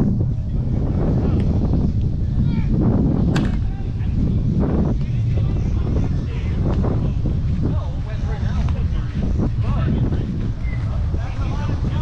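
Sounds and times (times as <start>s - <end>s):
distant voices: 0.0s - 12.0s
wind rumble on microphone: 0.0s - 12.0s.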